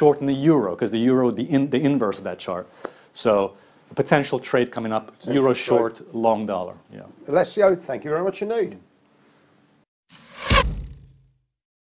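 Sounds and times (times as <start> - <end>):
whoosh into deep hit: 10.1 - 11.3.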